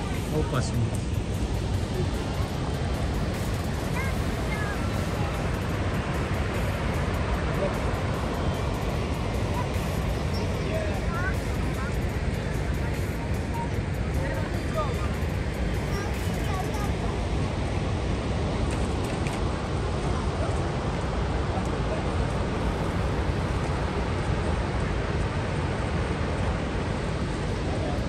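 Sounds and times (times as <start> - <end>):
rushing river water: 0.0 - 28.0.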